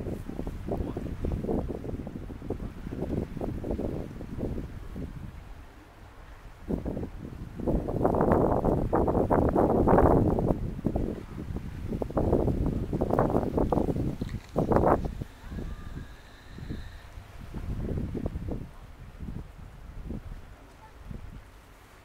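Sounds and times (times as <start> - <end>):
wind buffeting microphone: 0.0 - 21.6.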